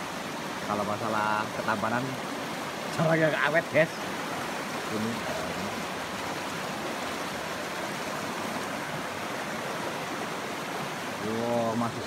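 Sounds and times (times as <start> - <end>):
river rushing over stones: 0.0 - 12.0.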